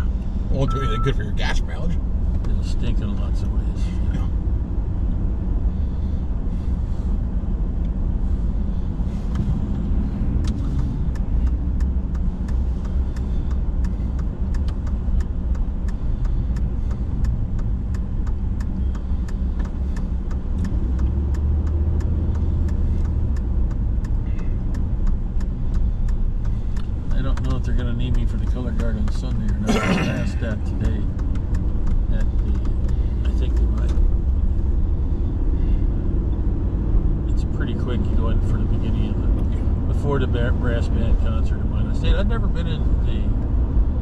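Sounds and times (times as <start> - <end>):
car tyres and engine rumble: 0.0 - 44.0
small ticks: 10.4 - 29.6.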